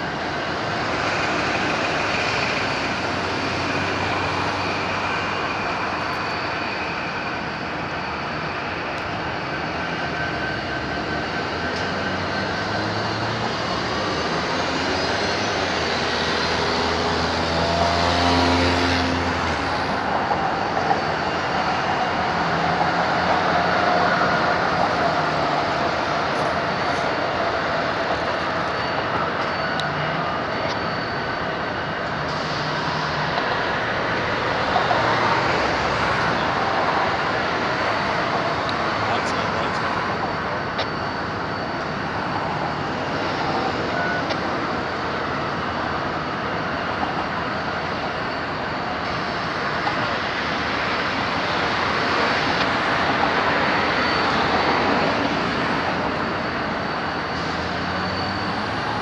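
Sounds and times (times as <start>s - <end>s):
outdoor noise: 0.0s - 59.0s.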